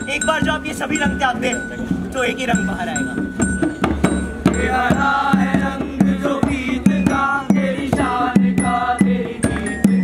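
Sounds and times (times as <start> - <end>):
drum beats: 0.0 - 10.0
voices chanting a sung refrain: 4.1 - 10.0.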